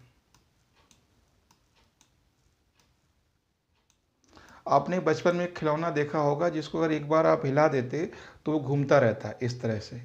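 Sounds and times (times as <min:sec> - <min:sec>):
faint clicks: 0:00.0 - 0:03.0, 0:03.7 - 0:04.6.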